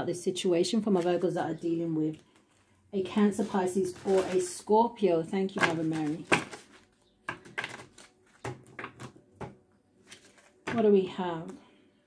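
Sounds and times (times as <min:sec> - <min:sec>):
cards being shuffled by hand: 0:03.2 - 0:04.7, 0:05.6 - 0:10.8.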